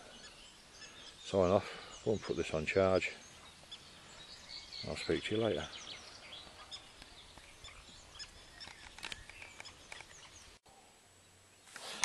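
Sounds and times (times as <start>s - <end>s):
faint birdsong chirps: 0.0s - 12.0s.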